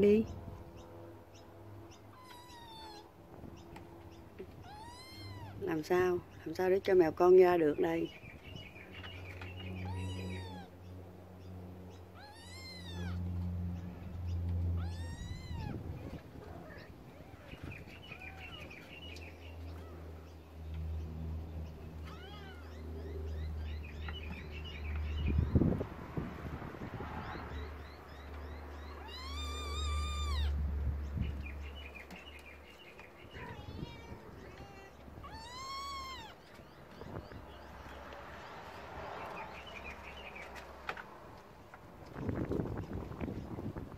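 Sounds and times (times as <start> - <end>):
kitten mewing: 2.1 - 3.1, 4.6 - 5.6, 9.8 - 10.7, 12.2 - 13.3, 14.8 - 17.6, 29.0 - 30.6, 33.3 - 36.4.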